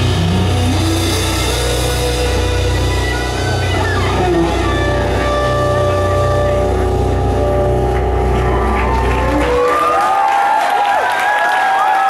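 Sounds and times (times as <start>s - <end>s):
band holding a chord: 0.0s - 10.2s
audience applause: 7.3s - 12.0s
audience cheering: 7.3s - 12.0s.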